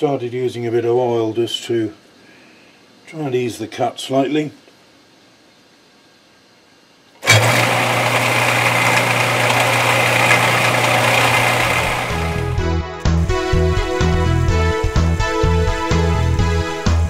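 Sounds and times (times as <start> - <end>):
metal lathe humming and hissing: 7.3 - 12.5
music: 11.8 - 17.0.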